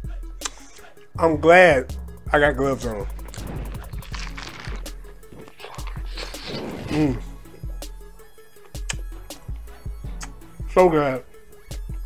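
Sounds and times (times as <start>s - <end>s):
background music: 0.0s - 12.0s
lettuce wrap chewing: 3.1s - 7.7s
crunchy lettuce crackle: 3.2s - 7.2s
person humming mm: 5.5s - 7.4s.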